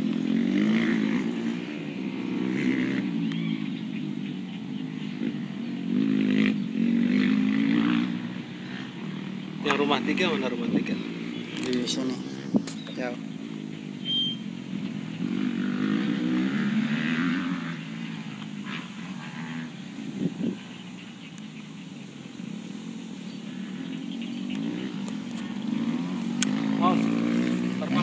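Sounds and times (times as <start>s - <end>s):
small engine running: 22.5s - 28.0s.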